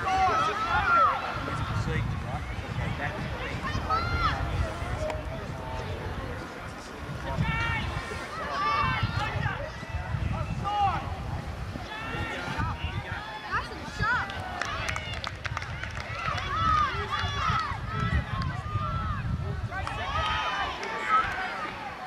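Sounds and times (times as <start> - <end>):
people shouting: 0.0 - 1.4, 11.8 - 15.2.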